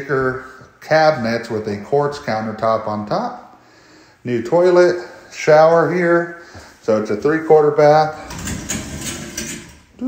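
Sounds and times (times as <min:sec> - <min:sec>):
sliding shower door rattling open: 0:08.1 - 0:09.9.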